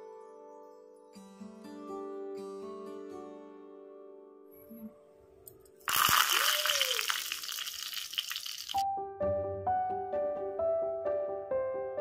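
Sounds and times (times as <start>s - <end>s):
leaves sizzling in hot oil: 5.9s - 8.8s.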